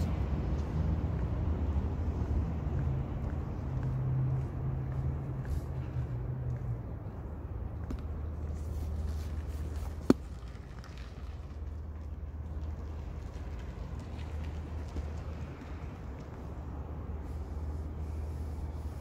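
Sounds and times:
footsteps on pavement: 0.0 - 19.0
low rumble of vehicles: 0.0 - 19.0.

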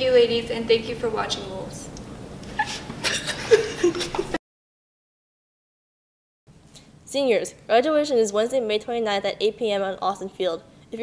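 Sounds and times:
young women laughing: 2.6 - 4.4.

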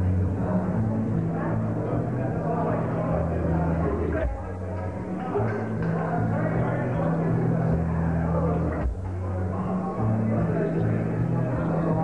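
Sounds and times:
bass guitar: 0.0 - 12.0.

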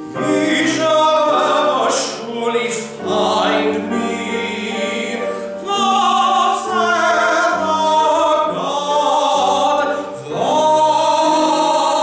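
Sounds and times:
man singing operatically: 0.0 - 12.0
piano accompaniment: 0.0 - 12.0.

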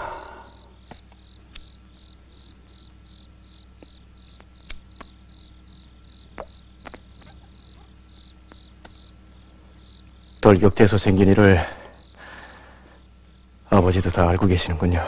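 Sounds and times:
cricket chirping: 0.0 - 15.0
low steady hum: 0.0 - 15.0
faint clicks: 3.8 - 5.2.

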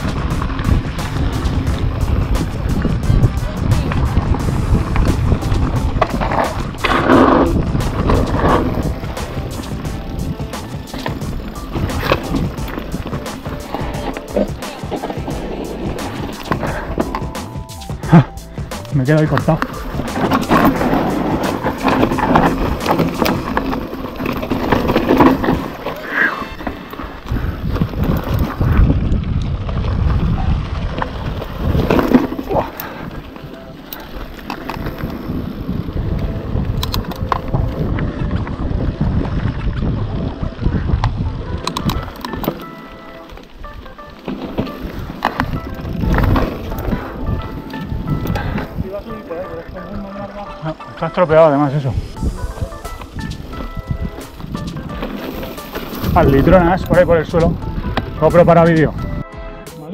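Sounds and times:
background music: 0.0 - 26.9, 32.0 - 59.9
bike rattling on dirt trail: 0.0 - 59.9.

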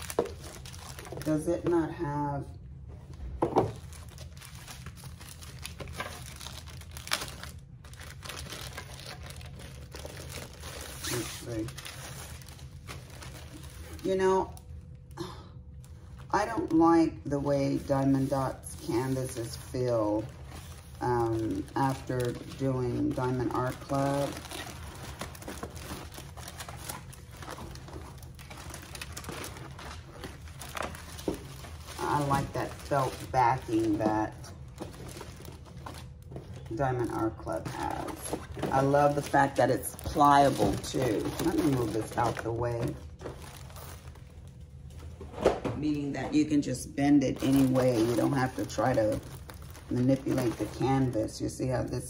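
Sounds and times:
plastic packaging crinkling: 0.0 - 1.8, 3.6 - 45.2, 47.3 - 52.0
steady low hum: 0.0 - 52.0.

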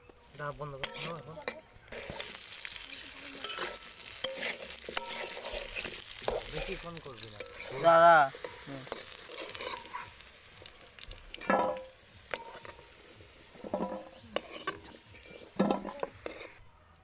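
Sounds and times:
potatoes sizzling in oil: 0.0 - 16.6
metal spoon scraping pan: 0.6 - 10.2, 11.0 - 16.6.

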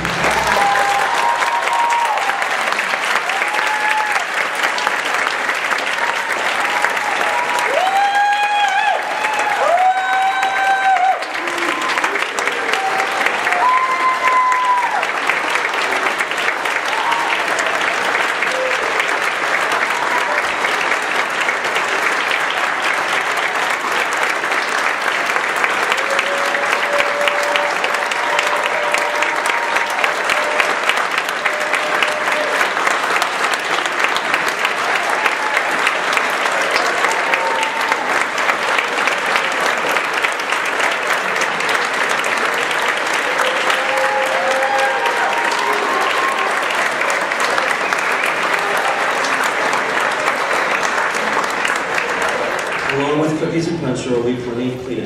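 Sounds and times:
cheers and whoops: 0.0 - 4.9, 5.8 - 15.6, 16.7 - 20.8, 25.8 - 32.9, 34.6 - 39.7, 42.7 - 49.5
audience applauding: 0.0 - 54.3.

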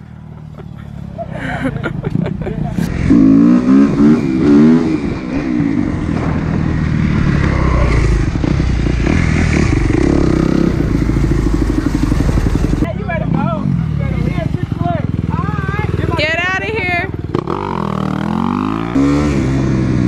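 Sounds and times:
dirt bike engine revving: 2.8 - 20.0.

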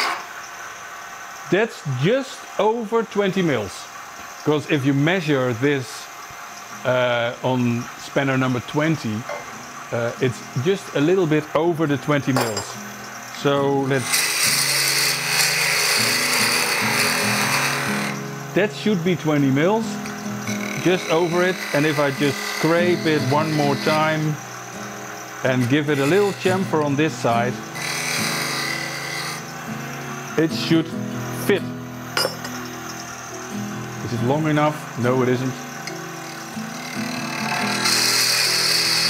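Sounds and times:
lathe tool cutting wood: 13.4 - 29.7, 34.2 - 39.0
sharp metallic clink: 32.2 - 32.6.

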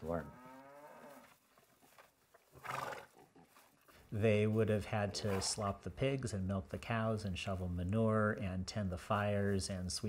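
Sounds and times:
horse whinny: 2.6 - 3.2.

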